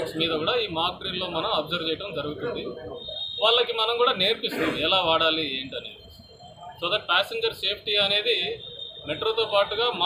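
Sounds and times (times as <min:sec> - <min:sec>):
man speaking into microphones: 0:00.0 - 0:06.0, 0:06.8 - 0:10.0.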